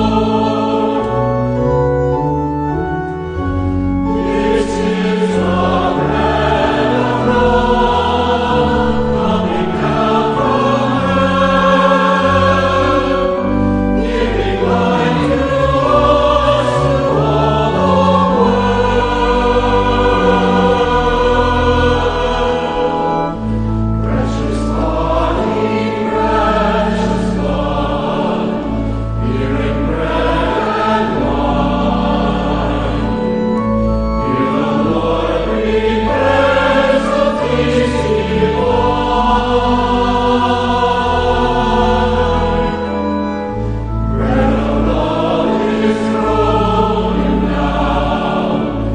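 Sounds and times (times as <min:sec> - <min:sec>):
choir singing a hymn: 0:00.0 - 0:48.9
organ chords: 0:00.0 - 0:48.9.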